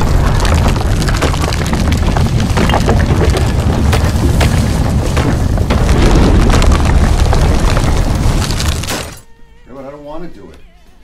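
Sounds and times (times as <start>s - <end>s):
low explosion rumble: 0.0s - 8.9s
debris crackling: 0.0s - 9.3s.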